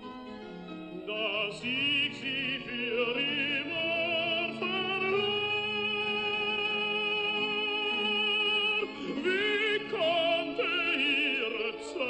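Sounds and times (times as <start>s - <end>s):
orchestral opera music: 0.0s - 12.0s.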